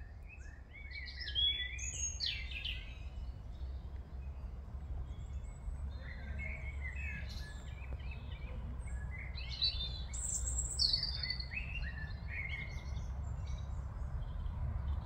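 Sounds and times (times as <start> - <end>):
songbirds singing: 0.0 - 15.0.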